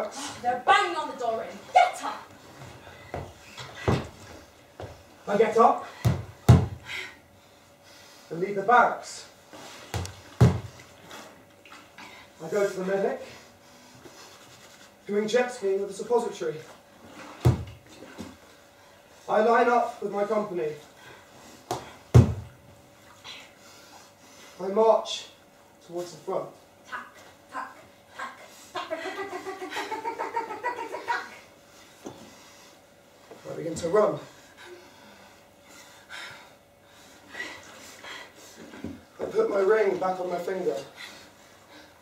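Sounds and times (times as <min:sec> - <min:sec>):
person breathing hard: 0:34.3 - 0:38.8.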